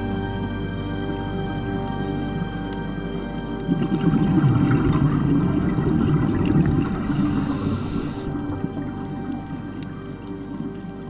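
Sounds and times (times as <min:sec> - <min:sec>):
background music: 0:00.0 - 0:11.0
underwater bubbles gurgling: 0:01.1 - 0:11.0.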